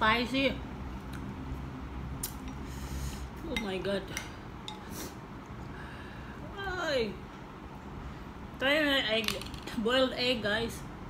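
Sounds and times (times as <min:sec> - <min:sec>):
chopsticks tapping ceramic bowl: 0:03.5 - 0:04.8.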